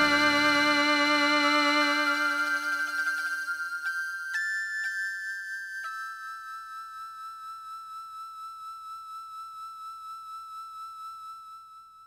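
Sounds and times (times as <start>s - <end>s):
dark synth music: 0.0s - 2.7s
high flute-like synthesizer note: 0.0s - 3.2s.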